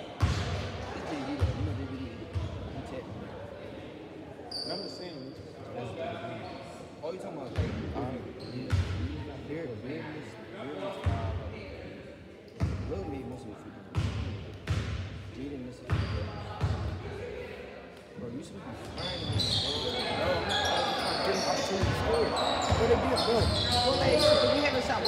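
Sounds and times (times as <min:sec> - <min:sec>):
people chattering: 0:00.0 - 0:13.9, 0:15.4 - 0:25.0.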